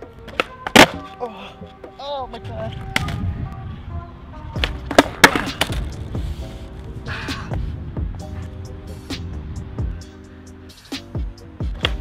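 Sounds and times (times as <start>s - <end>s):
skateboard cracks and clatters: 0.2s - 1.2s, 2.6s - 3.2s, 4.6s - 5.9s.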